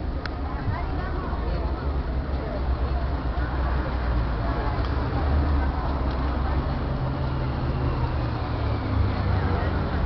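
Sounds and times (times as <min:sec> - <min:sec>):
noisy outdoor background: 0:00.0 - 0:10.0
vehicle engine rumble: 0:00.0 - 0:10.0.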